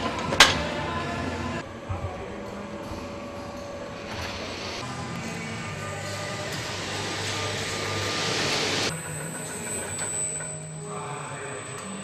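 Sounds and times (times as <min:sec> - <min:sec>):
conveyor machine hum: 0:00.0 - 0:12.0
thin high whine: 0:01.3 - 0:12.0
loud hiss: 0:03.8 - 0:08.9.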